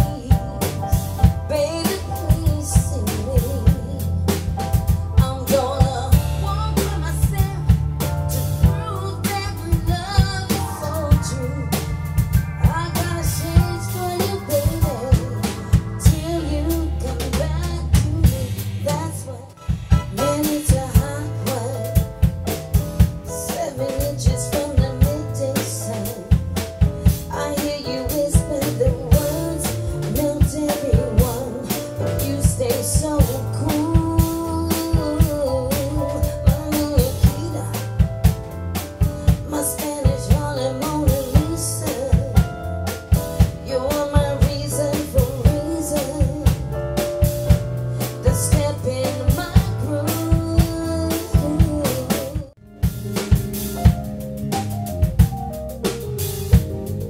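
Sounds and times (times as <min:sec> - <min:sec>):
woman singing: 0:00.0 - 0:22.3, 0:23.3 - 0:38.1, 0:39.2 - 0:42.7, 0:43.4 - 0:47.1, 0:48.0 - 0:52.6
drum kit: 0:00.0 - 0:57.0
electric bass: 0:00.0 - 0:57.0
stage piano: 0:00.0 - 0:57.0.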